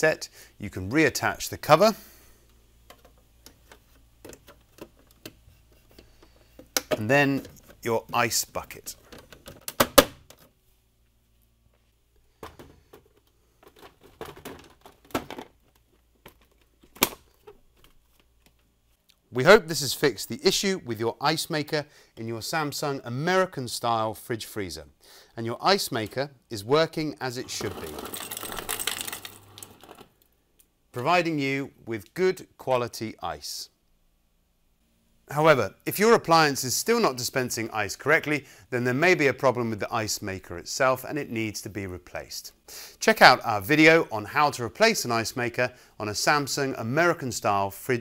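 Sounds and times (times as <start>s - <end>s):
plastic clicks and knocks: 2.8s - 5.4s, 9.0s - 10.5s
ice clattering into a glass: 27.6s - 30.0s.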